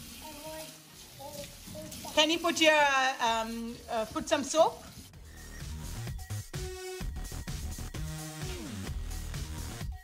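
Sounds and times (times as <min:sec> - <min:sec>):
faucet running into steel sink: 0:00.0 - 0:05.0.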